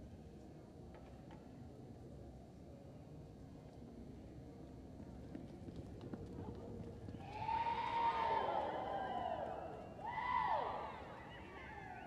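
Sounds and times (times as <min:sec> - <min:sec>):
spectators whooping and hollering: 0:07.2 - 0:12.0.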